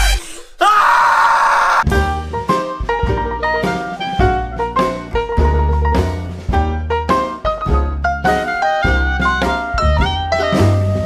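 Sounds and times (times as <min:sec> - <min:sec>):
man yelling: 0:00.6 - 0:01.9.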